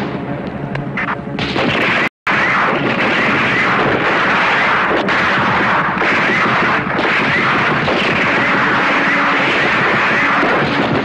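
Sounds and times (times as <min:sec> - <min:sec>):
gunfire and artillery blasts: 0:01.0 - 0:11.0.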